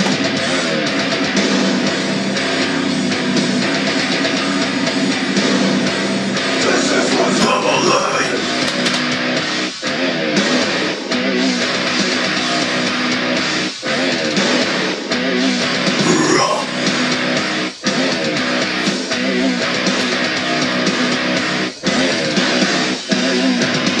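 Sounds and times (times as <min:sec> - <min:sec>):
metalcore song with distorted guitars: 0:00.0 - 0:24.0.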